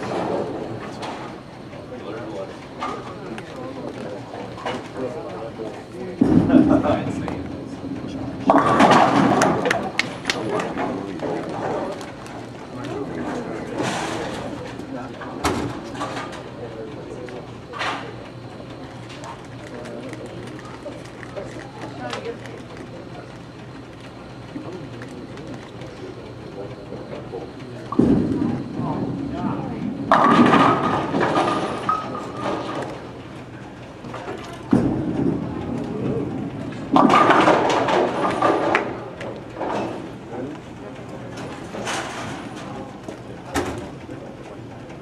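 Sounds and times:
bowling ball rolling: 6.2 - 12.0, 27.9 - 33.2, 34.7 - 40.1
ball crashing into pins: 30.1 - 32.6.

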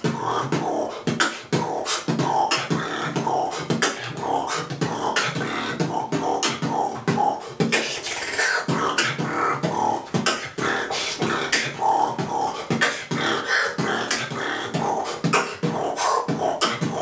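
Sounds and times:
man beatboxing: 0.0 - 17.0.

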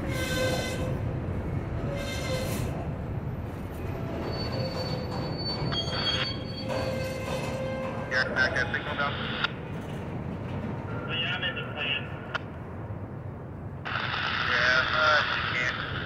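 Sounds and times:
steel wheels rumbling on rail: 0.0 - 16.0
high-pitched wheel squeals: 4.0 - 8.0.

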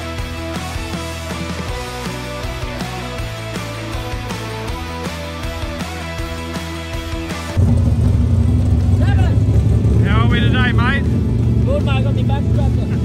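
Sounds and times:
background music: 0.0 - 7.6
car engine rumbling: 6.3 - 13.0
voices: 8.9 - 13.0.

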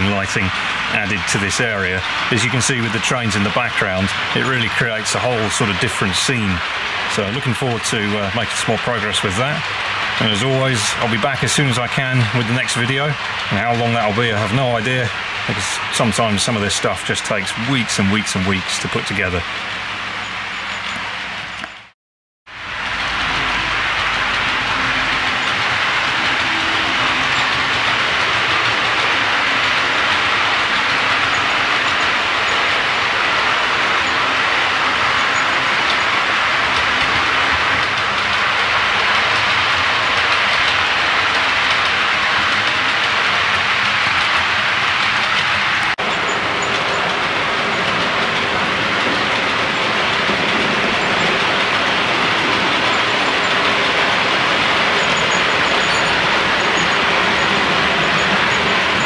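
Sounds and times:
clickety-clack of rail joints: 0.0 - 21.9, 22.6 - 59.0
model trains rolling rumble: 0.0 - 21.9, 22.5 - 59.0.

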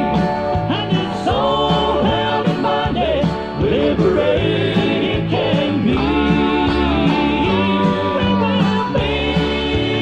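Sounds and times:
instrumental accompaniment: 0.0 - 10.0
male quartet singing in harmony: 0.6 - 10.0.

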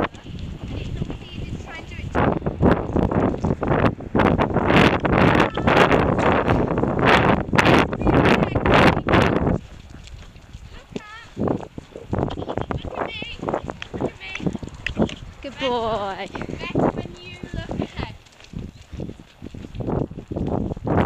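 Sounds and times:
hooves cantering on soft ground: 0.0 - 21.0.

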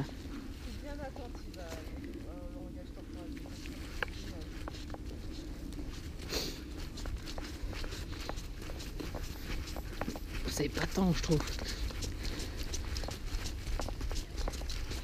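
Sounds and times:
footsteps crunching on wet gravel: 2.8 - 15.0.

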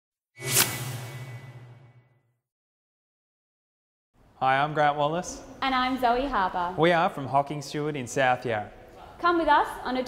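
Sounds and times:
whoosh: 0.4 - 2.3.

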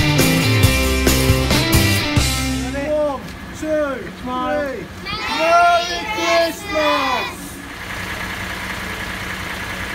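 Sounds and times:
diesel engine idling: 0.0 - 9.9
children's voices: 5.0 - 7.7.

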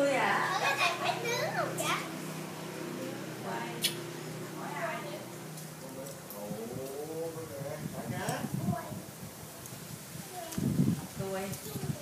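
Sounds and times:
children's voices and chatter: 0.0 - 4.1, 8.4 - 12.0
sharp click: 3.8 - 4.0.

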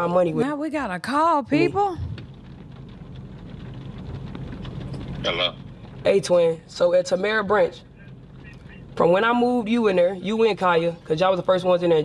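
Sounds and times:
low hum inside parked car: 1.2 - 12.0.

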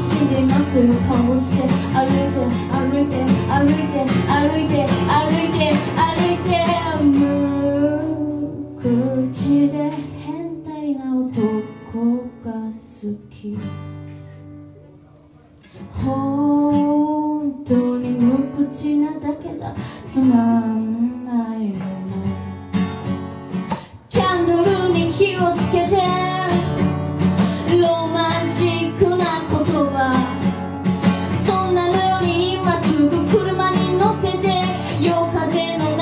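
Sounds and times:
person singing: 0.0 - 13.6, 31.3 - 36.0
strummed acoustic guitar: 0.0 - 36.0.

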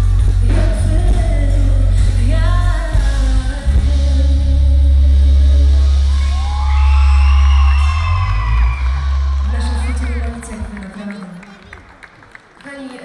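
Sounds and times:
live pop band playing: 0.0 - 10.7
heavy bass: 0.0 - 10.8.

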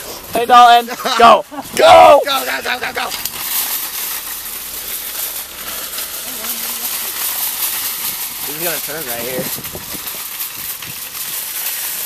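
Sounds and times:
cart wheels rolling over gravel: 0.0 - 12.0.

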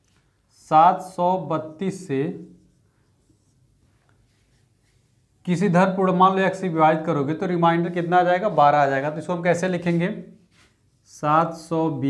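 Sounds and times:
marker pen on whiteboard: 0.0 - 12.0
man speaking: 0.6 - 2.6, 5.5 - 10.3, 11.1 - 12.0.

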